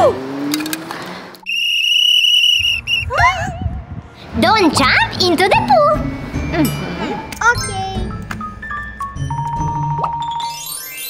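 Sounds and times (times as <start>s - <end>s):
whistle blast: 1.4s - 3.4s.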